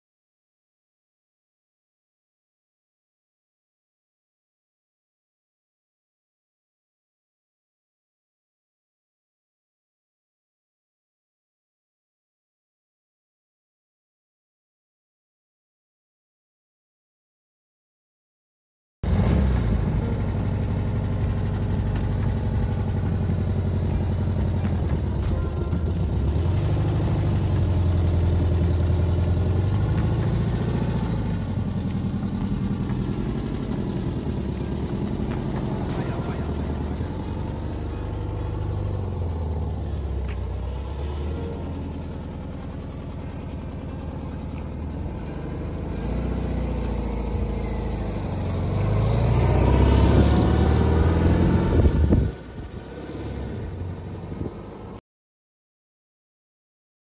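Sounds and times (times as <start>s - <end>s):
car engine idling and revving: 19.0s - 55.0s.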